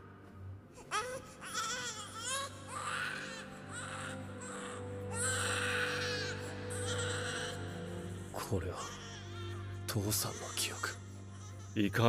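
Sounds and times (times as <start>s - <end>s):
baby crying: 0.8s - 11.8s.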